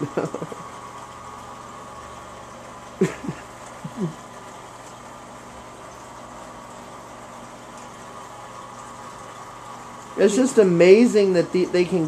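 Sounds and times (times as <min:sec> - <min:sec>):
aquarium water pumps humming: 0:00.0 - 0:12.0.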